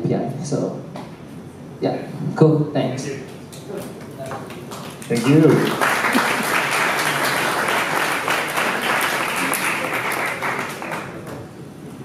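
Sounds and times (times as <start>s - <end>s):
audience applauding: 4.3s - 11.6s.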